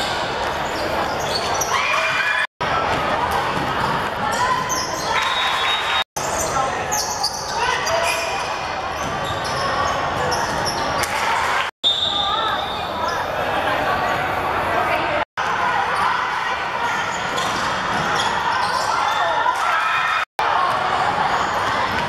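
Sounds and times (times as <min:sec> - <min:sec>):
echoing voices in gym: 0:00.0 - 0:22.0.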